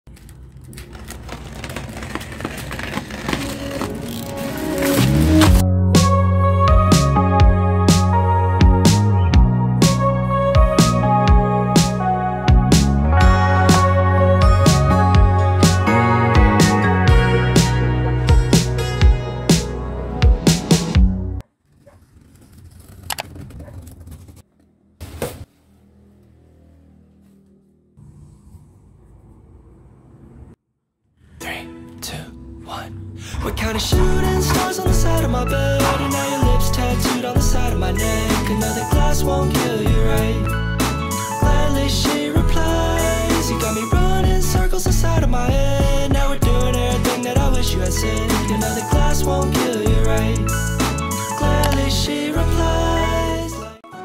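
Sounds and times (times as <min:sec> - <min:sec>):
plastic pouch crinkling: 0:00.3 - 0:05.1.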